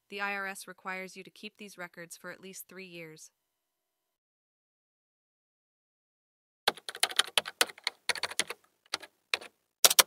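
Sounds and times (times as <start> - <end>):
keyboard key clicks: 6.7 - 10.0.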